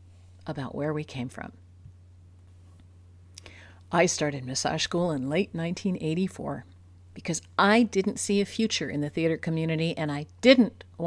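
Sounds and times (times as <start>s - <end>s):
faint steady low hum: 0.0s - 11.0s
woman talking: 0.4s - 1.6s, 3.9s - 11.0s
intake of breath: 3.4s - 3.8s.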